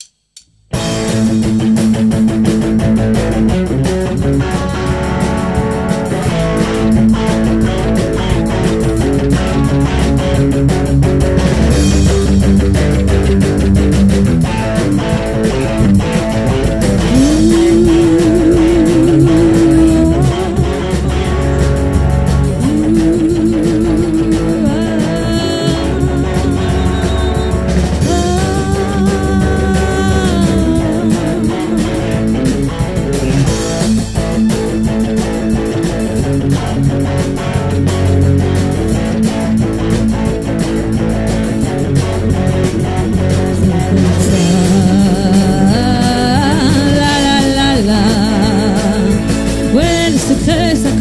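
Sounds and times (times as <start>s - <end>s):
guitar lead wavering long notes: 0.7s - 51.0s
rock band playing: 0.7s - 51.0s.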